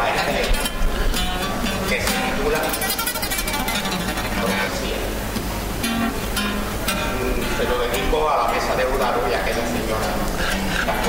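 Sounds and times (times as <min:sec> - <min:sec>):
flamenco guitar music: 0:00.0 - 0:11.0.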